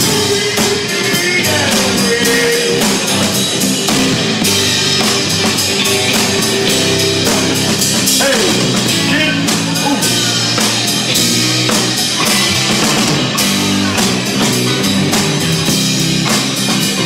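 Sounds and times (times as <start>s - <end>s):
bass guitar: 0.0s - 17.0s
drum kit with cymbals: 0.0s - 17.0s
electric guitars: 0.0s - 17.0s.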